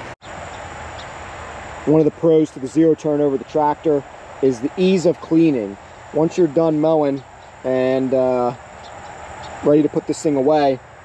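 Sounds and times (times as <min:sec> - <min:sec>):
high insect trill: 0:00.2 - 0:11.0
steady hiss: 0:00.2 - 0:11.0
man's voice: 0:01.9 - 0:08.6, 0:09.6 - 0:10.8.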